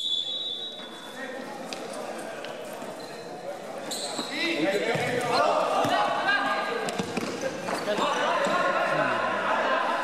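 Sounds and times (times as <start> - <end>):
shoe squeaks: 2.9 - 5.2
players shouting: 7.8 - 10.0.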